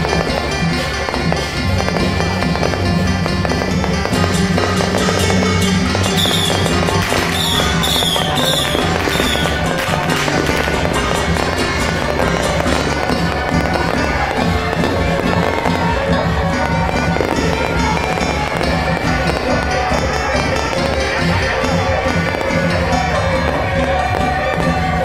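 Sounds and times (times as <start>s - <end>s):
fireworks crackling: 0.0s - 25.0s
loud music: 0.0s - 25.0s
falling firework whistles: 6.1s - 9.7s.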